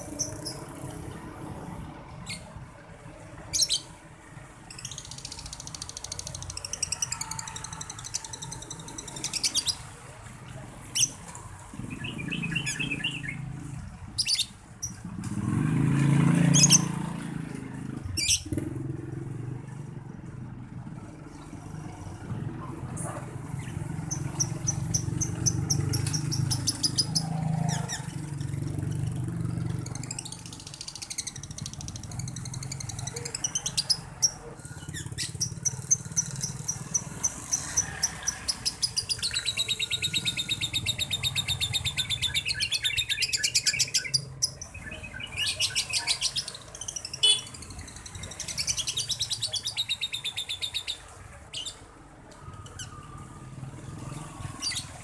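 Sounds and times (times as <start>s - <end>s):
lovebird chattering: 18.2s - 18.6s, 23.6s - 28.5s, 29.9s - 51.8s.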